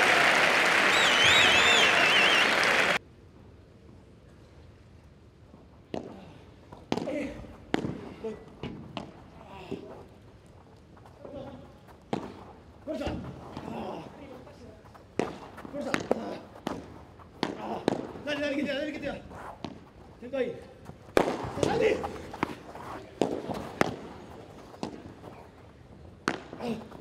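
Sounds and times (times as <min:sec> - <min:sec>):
people talking: 0:11.2 - 0:11.7, 0:12.9 - 0:14.9, 0:15.7 - 0:16.5, 0:17.6 - 0:19.3, 0:21.5 - 0:23.6.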